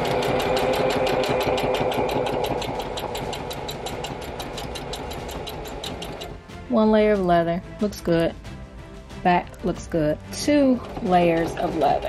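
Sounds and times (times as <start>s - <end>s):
sewing machine stitching leather: 0.0s - 6.4s, 10.8s - 12.0s.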